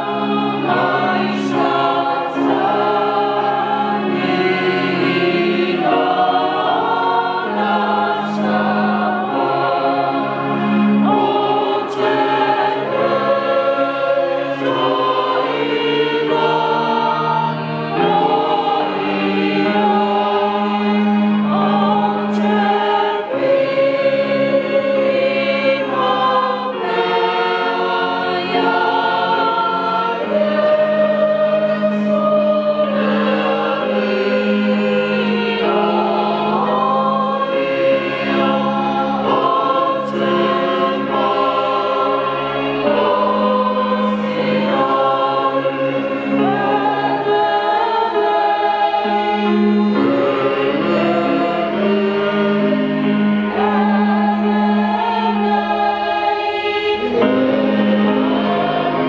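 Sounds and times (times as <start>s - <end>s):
congregation singing a hymn: 0.0s - 59.0s.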